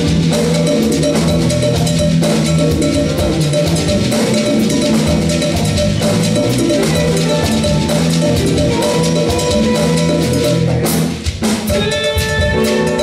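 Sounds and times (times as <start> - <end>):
drum kit and hand drums: 0.0 - 13.0
jazz band playing live: 0.0 - 13.0.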